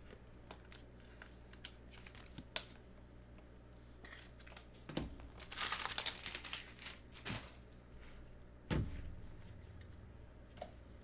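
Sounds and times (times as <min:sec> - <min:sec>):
foil wrapper crinkling: 0:00.5 - 0:02.7, 0:05.2 - 0:07.6.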